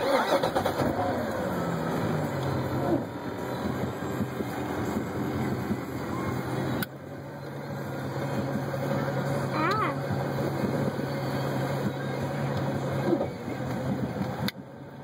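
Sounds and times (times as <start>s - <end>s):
motorboat engine idling: 0.0s - 15.0s.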